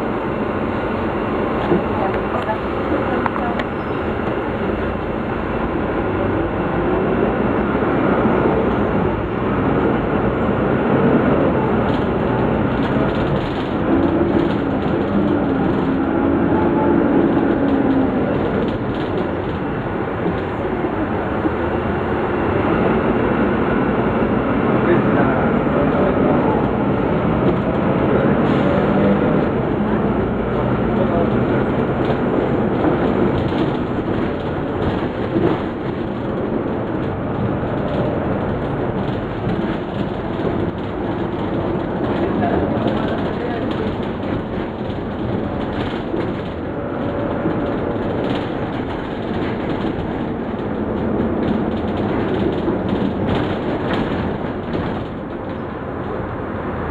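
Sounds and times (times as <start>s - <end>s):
bus diesel engine running: 0.0s - 56.9s
passengers talking: 0.0s - 56.9s
road noise: 0.0s - 56.9s.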